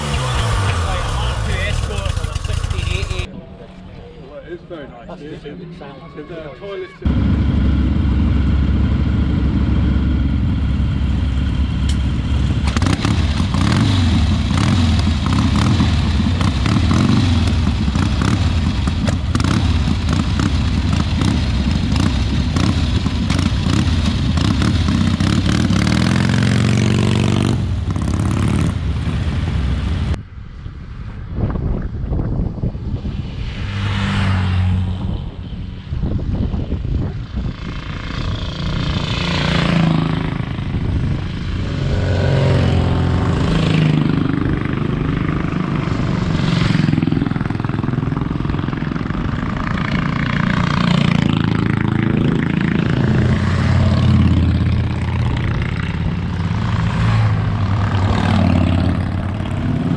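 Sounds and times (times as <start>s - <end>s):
motorcycle engine revving: 0.0s - 3.3s, 7.1s - 30.2s, 37.1s - 59.9s
motorcycle riding noise: 0.0s - 3.4s, 7.1s - 59.9s
wind on microphone: 29.7s - 33.8s, 34.8s - 50.4s.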